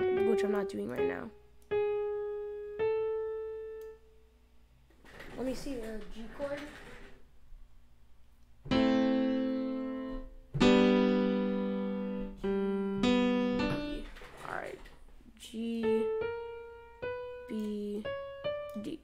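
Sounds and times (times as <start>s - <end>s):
piano chords ringing: 0.0s - 4.2s, 8.6s - 14.3s, 15.6s - 19.0s
single piano notes: 8.6s - 14.8s.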